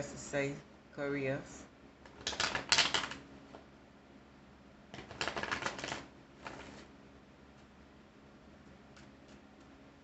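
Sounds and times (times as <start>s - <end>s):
cards being shuffled: 2.1s - 3.2s, 5.0s - 6.9s.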